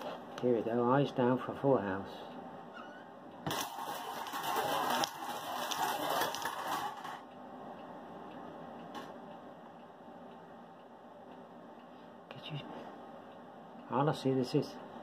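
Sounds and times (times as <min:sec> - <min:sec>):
balls rattling in bingo cage: 0:03.5 - 0:07.2.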